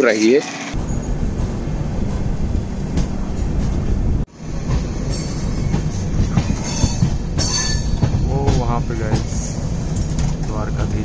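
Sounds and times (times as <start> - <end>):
train wheels rumbling on track: 0.7 - 11.0.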